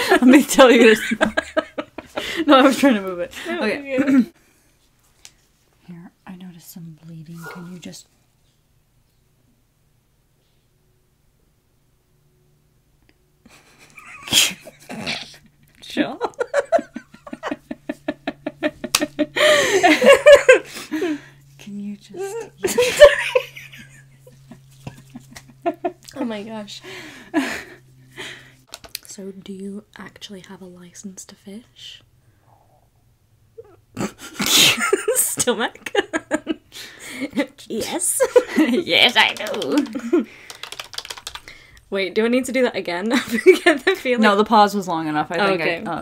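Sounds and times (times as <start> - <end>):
woman laughing: 0.0 - 4.3, 13.5 - 21.3, 22.1 - 28.4, 33.6 - 40.4, 43.1 - 44.0
stifled laughter: 13.5 - 21.3, 22.2 - 26.1.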